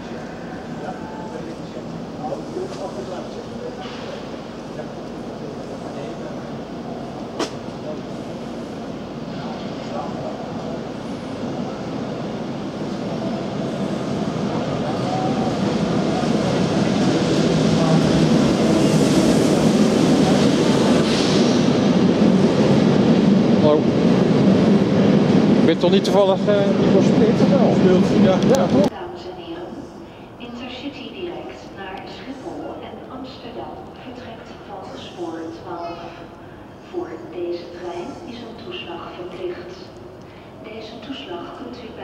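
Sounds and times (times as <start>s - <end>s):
passenger train rumbling past: 0.0s - 42.0s.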